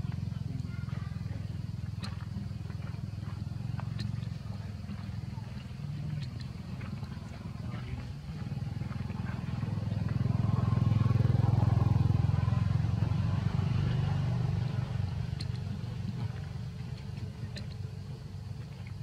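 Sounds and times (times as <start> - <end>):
passing vehicle engine rumble: 0.0 - 19.0.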